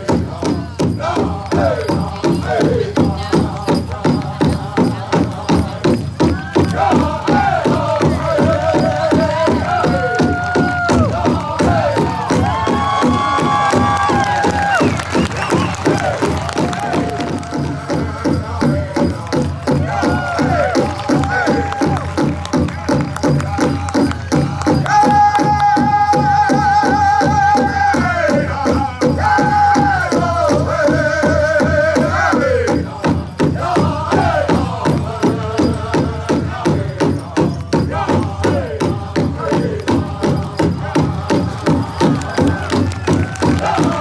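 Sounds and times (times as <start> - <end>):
fast steady drumbeat: 0.0 - 44.0
voices singing a chant: 0.0 - 44.0.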